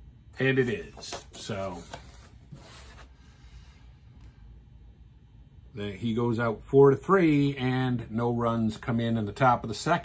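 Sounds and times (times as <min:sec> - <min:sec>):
paper rustling: 0:00.6 - 0:03.2.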